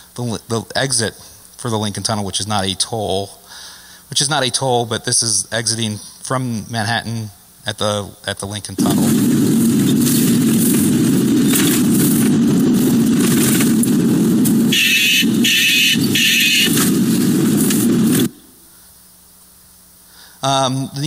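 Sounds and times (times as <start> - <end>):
road and engine rumble: 8.8 - 18.6.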